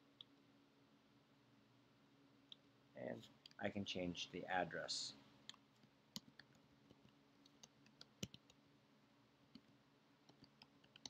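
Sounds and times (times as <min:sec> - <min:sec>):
low steady hum: 0:00.0 - 0:11.0
computer keys clicking: 0:06.2 - 0:08.6, 0:10.3 - 0:11.0.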